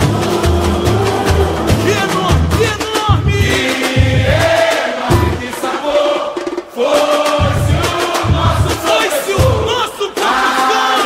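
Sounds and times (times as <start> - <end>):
chorus singing: 0.0 - 11.0
deep drum beats: 0.0 - 11.0
samba percussion: 0.0 - 11.0.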